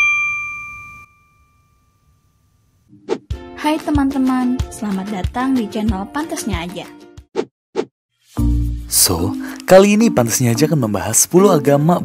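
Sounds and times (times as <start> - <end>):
bell-like ding: 0.0 - 2.6.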